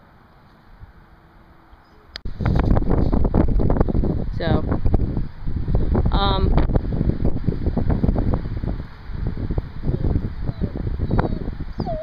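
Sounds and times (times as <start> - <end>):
wind rumble on microphone: 2.2 - 12.0
dog whining: 10.4 - 12.0.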